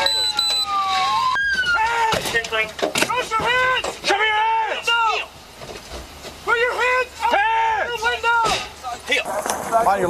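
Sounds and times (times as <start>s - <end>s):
man shouting commands: 3.1s - 5.4s, 6.4s - 9.1s.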